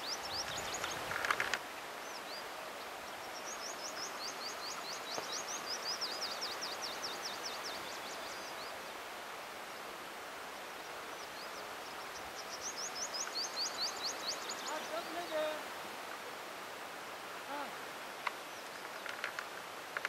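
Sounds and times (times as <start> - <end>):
outdoor background hiss: 0.0 - 20.0.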